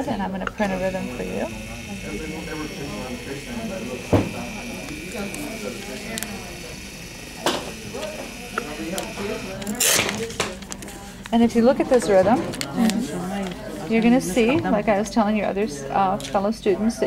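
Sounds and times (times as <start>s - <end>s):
printer motor whine: 0.6s - 13.0s.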